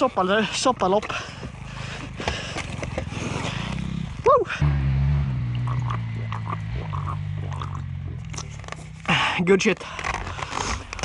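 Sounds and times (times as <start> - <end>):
motorcycle engine running: 0.0 - 10.6.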